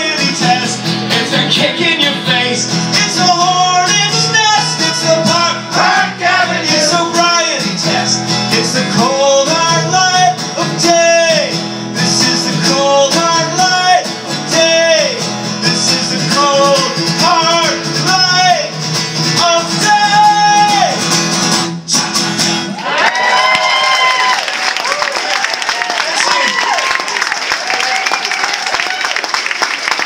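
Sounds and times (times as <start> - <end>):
man singing: 0.0 - 21.1
strummed acoustic guitar: 0.0 - 22.8
audience applauding and cheering: 22.7 - 30.0.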